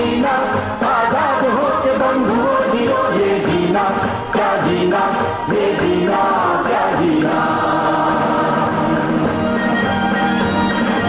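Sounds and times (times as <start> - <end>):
chorus singing long held notes: 0.0 - 11.0
orchestral accompaniment: 0.1 - 11.0.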